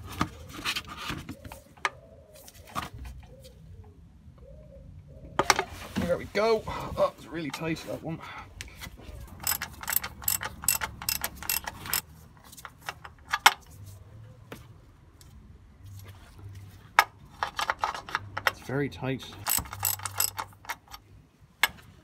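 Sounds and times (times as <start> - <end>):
metal tools clinking: 9.4 - 12.0, 19.3 - 21.1
socket ratchet clicking: 9.4 - 12.0, 19.4 - 21.0.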